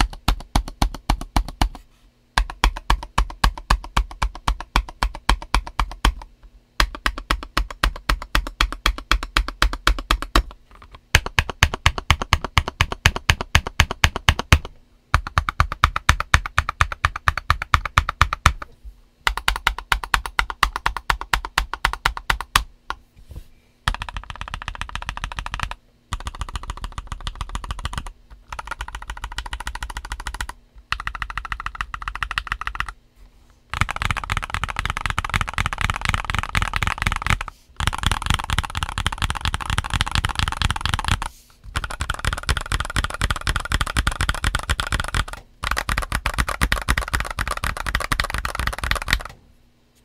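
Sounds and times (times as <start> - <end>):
mechanical keyboard typing: 0.0 - 1.8, 2.4 - 22.7, 23.8 - 33.0, 33.7 - 49.4.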